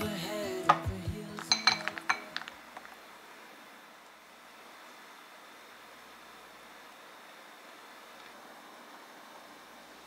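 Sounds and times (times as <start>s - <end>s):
background music: 0.0s - 2.5s.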